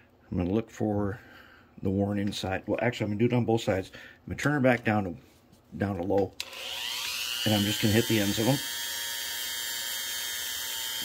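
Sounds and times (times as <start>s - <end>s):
rotary tool whining: 6.4s - 11.0s.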